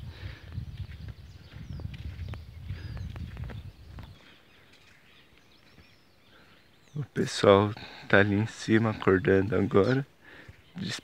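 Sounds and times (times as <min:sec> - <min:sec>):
soft footsteps: 0:00.0 - 0:06.1
faint bird chirps: 0:00.4 - 0:11.0.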